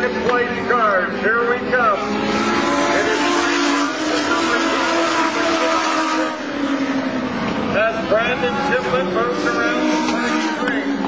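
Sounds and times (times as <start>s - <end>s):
race cars at full throttle: 0.0s - 11.0s.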